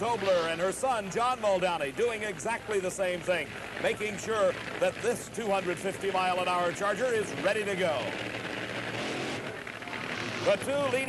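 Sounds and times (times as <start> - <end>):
dragster engines idling: 0.0 - 11.0.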